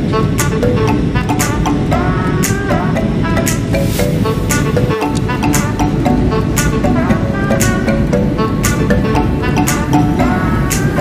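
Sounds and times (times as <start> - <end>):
upbeat instrumental music: 0.0 - 11.0.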